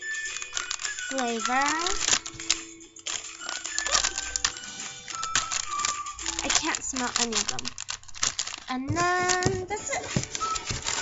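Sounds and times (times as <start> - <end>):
faint music with held notes: 0.0 - 11.0
plastic packets crinkling: 0.0 - 11.0.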